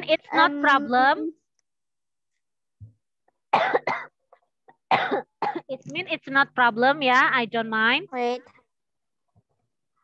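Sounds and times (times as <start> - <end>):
person coughing: 3.5 - 5.7.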